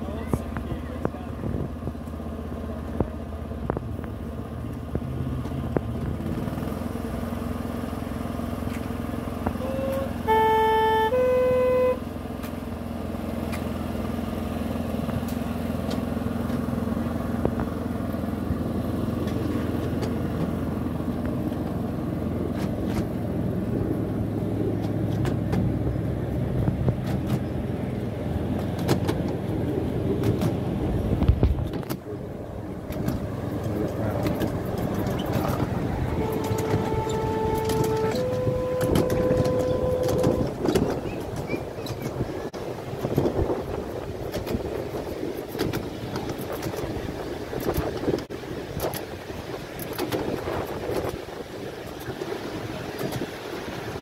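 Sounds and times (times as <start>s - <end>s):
locomotive horn: 9.5s - 12.5s, 34.2s - 41.4s
train wheels clicking on track: 32.8s - 49.1s.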